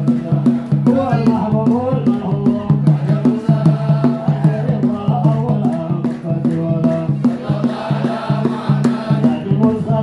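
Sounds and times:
men chanting into microphones: 0:00.0 - 0:10.0
percussion beat: 0:00.0 - 0:10.0
hand claps: 0:04.9 - 0:07.6.

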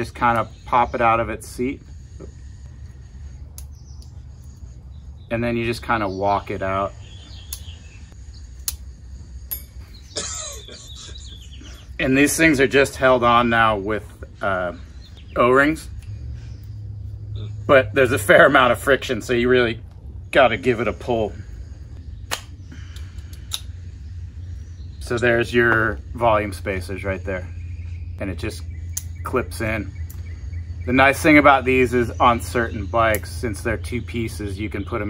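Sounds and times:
snap ring scraping: 0:00.0 - 0:04.9, 0:07.1 - 0:10.2
sharp metallic clicks: 0:07.4 - 0:07.8, 0:08.6 - 0:08.9, 0:22.3 - 0:23.7, 0:28.8 - 0:30.3.

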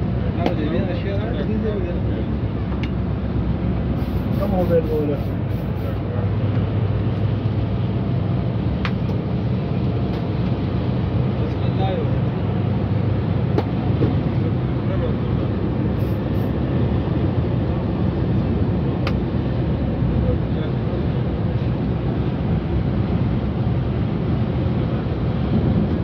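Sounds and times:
coach engine drone: 0:00.0 - 0:26.0
road noise: 0:00.0 - 0:26.0.

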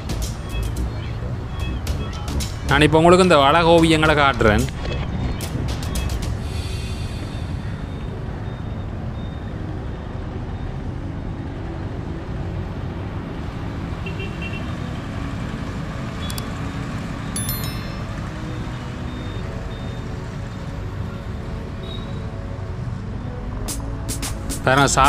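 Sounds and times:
traffic rumble: 0:00.0 - 0:24.0.

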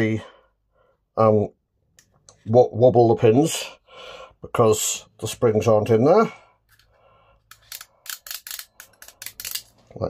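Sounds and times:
small metal parts clicking: 0:07.5 - 0:09.8.

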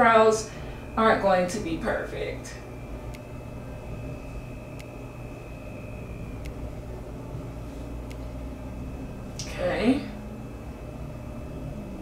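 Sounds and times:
faint high-pitched whine: 0:00.0 - 0:12.0
low background hum: 0:00.0 - 0:12.0.

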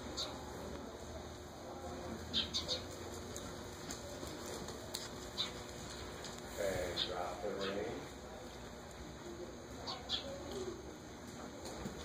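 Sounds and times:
horse walking on soft footing: 0:02.9 - 0:07.0.

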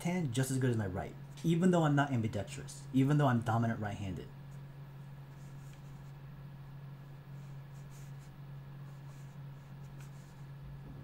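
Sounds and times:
steady low hum: 0:00.0 - 0:11.0
pen scratching on paper: 0:07.3 - 0:10.5.

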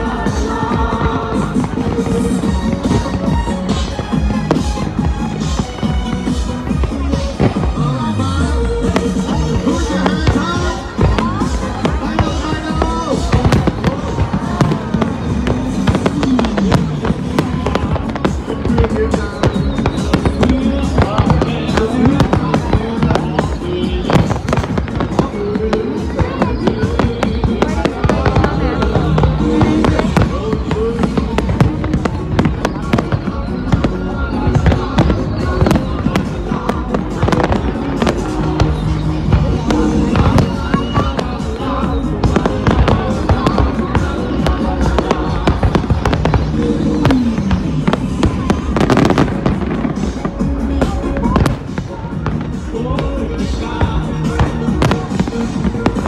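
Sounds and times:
firework bangs and crackles: 0:00.0 - 0:56.0
music playing: 0:00.0 - 0:56.0.

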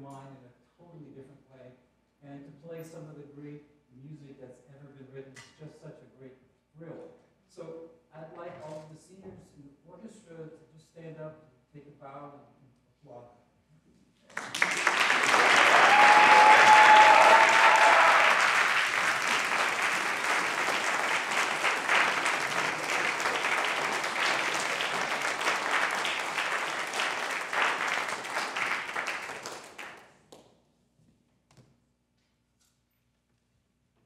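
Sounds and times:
audience applauding: 0:14.3 - 0:30.1.

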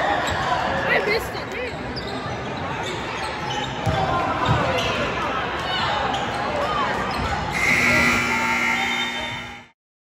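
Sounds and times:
scoreboard horn: 0:07.5 - 0:09.8.

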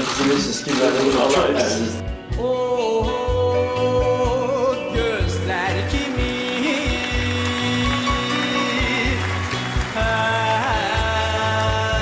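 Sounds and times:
man singing with vibrato: 0:01.8 - 0:12.0.

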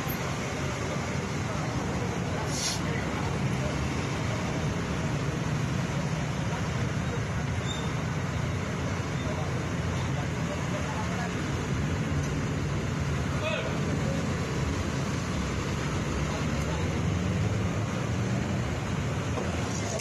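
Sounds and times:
car engines running: 0:00.0 - 0:20.0.

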